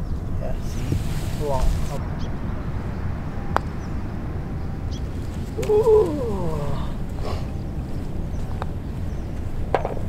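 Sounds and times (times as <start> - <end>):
steady low rumble: 0.0 - 10.0
putter striking golf ball: 9.7 - 10.0.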